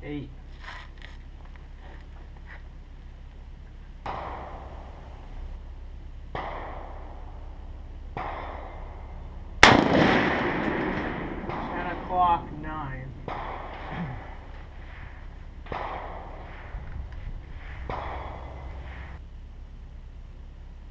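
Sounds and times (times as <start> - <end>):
loud rifle crack with echo: 4.1 - 5.2, 8.2 - 14.6, 15.6 - 16.6
distant rifle shots: 4.1 - 5.3, 6.3 - 14.7, 15.6 - 16.7, 17.8 - 18.8
high metallic ring: 10.6 - 12.5.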